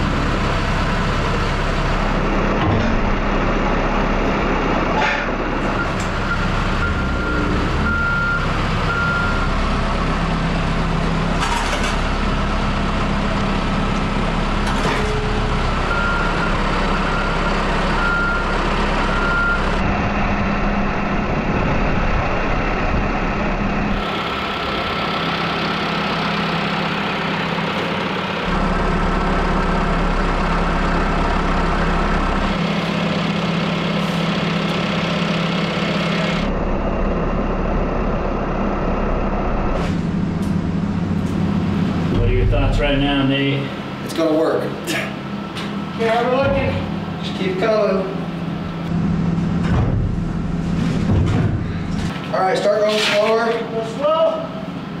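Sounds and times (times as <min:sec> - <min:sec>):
diesel engine running: 0:00.0 - 0:55.0
reversing alarm beeping: 0:05.7 - 0:09.6, 0:15.2 - 0:19.8.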